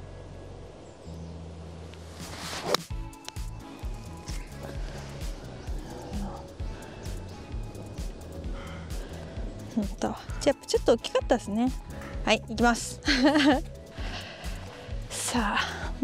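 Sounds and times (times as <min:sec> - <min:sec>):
golf club swish: 0:02.0 - 0:03.0
background music with beat: 0:02.2 - 0:16.0.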